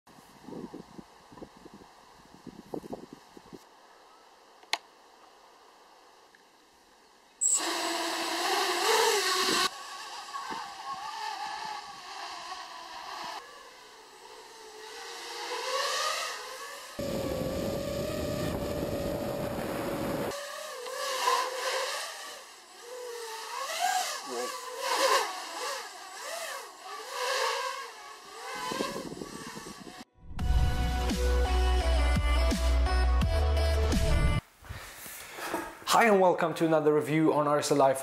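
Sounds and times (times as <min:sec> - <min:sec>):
drone motors and propellers whining: 0:00.4 - 0:31.2.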